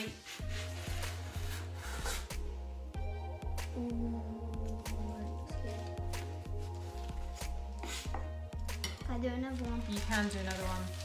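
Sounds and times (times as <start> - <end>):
background music with bass notes: 0.0 - 11.0.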